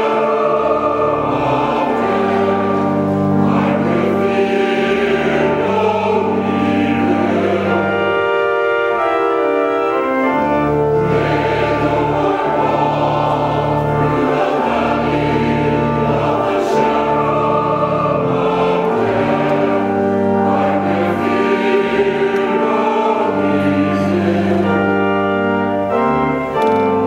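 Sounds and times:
choir singing: 0.0s - 27.0s
organ holding low notes: 0.0s - 27.0s.

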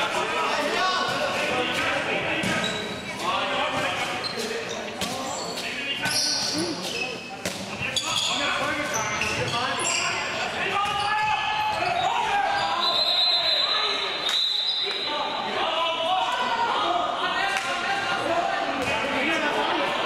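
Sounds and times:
shoe squeaks: 2.5s - 3.2s, 3.8s - 15.2s
players shouting: 9.8s - 20.0s.

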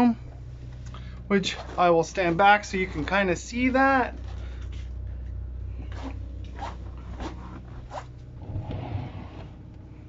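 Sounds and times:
generator humming: 0.0s - 10.0s.

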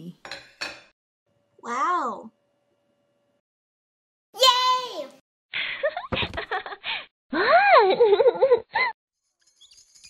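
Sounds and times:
dishes clinking: 0.2s - 0.9s.

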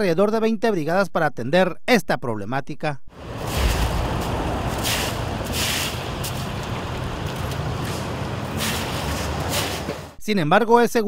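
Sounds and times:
low engine rumble: 3.2s - 10.2s
push brooms scraping wet gravel: 3.2s - 10.2s.

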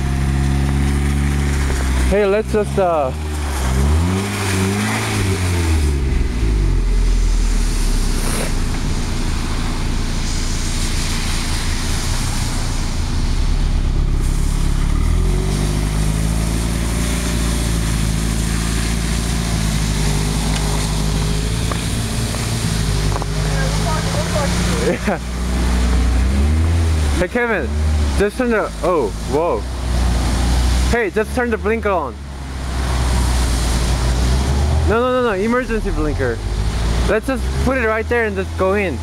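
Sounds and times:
car engine revving hard: 0.0s - 39.0s
tires spinning on snow: 0.0s - 39.0s.

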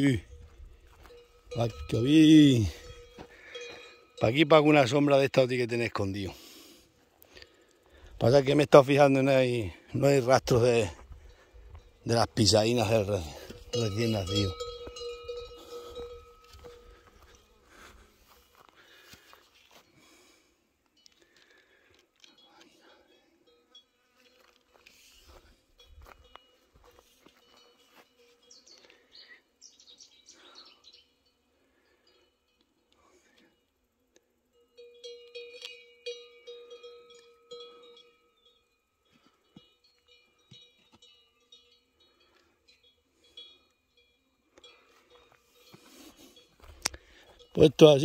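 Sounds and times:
cowbells clanking: 0.0s - 6.4s, 8.2s - 18.7s, 22.2s - 29.0s, 34.5s - 48.0s
faint ticks: 46.6s - 47.3s.

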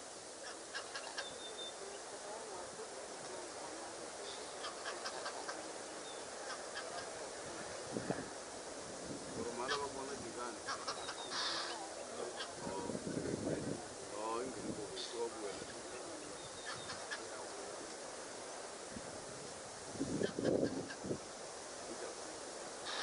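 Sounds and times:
steady outdoor hiss: 0.0s - 23.0s
birds calling with clicky notes: 10.7s - 11.6s.

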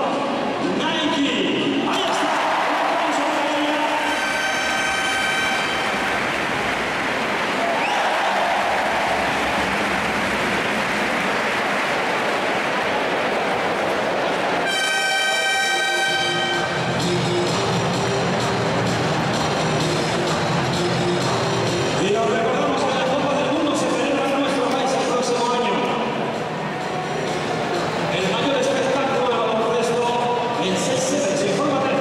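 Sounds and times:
crowd noise: 0.0s - 32.0s
arena horn blasts: 3.8s - 6.2s, 14.6s - 16.9s.

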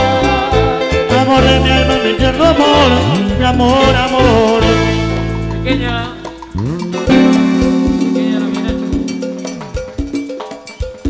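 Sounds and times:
cumbia band playing: 0.0s - 11.0s.

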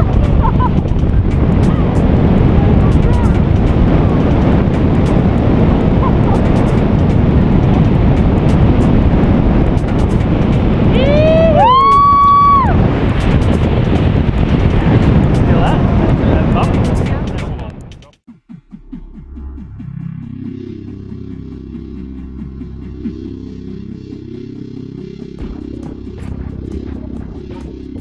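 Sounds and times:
wind rushing over microphone: 0.0s - 28.0s
person whooping: 10.9s - 12.8s.

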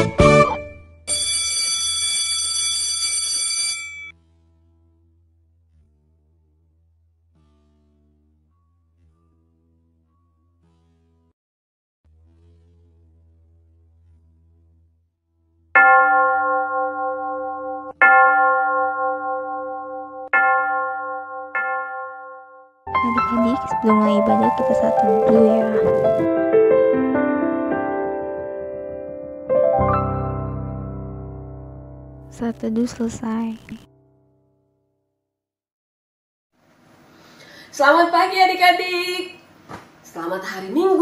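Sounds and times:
electric bell ringing: 1.1s - 4.2s, 15.8s - 25.8s.

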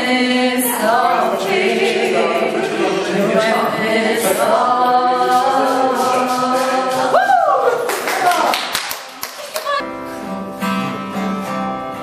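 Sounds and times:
voices singing a cappella: 0.0s - 7.9s.

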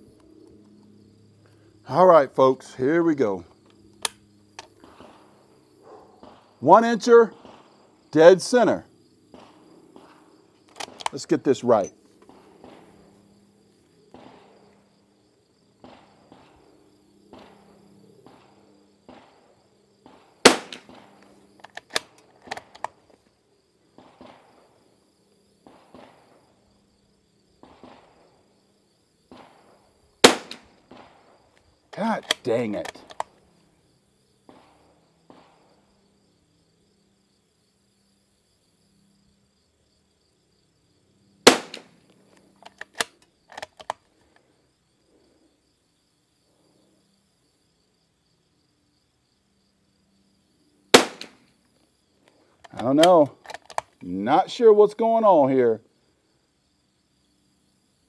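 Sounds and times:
insect buzz: 0.0s - 58.0s
rifle bolt clicks: 4.0s - 4.7s, 10.7s - 11.2s, 21.6s - 23.0s, 32.2s - 33.3s, 42.6s - 44.0s, 52.6s - 54.0s
rifle shots: 14.1s - 14.6s, 17.3s - 21.2s, 29.3s - 31.3s, 41.4s - 42.0s, 50.9s - 51.4s.

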